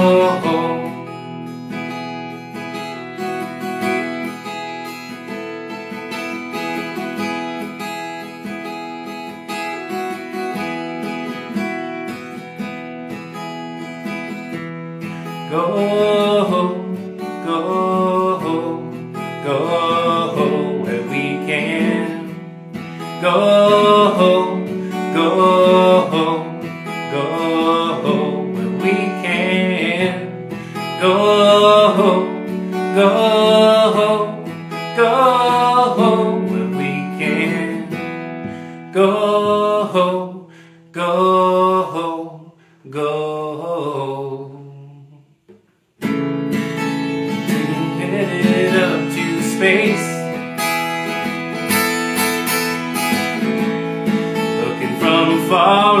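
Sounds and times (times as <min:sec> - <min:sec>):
man singing: 0:00.0 - 0:01.3, 0:15.4 - 0:45.3, 0:47.2 - 0:50.4, 0:54.4 - 0:56.0
acoustic guitar chords: 0:00.0 - 0:56.0.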